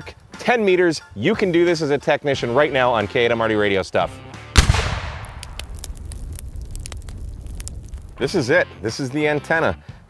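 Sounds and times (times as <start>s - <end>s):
explosion low rumble: 4.6s - 8.2s
fire crackles and pops: 4.6s - 8.5s.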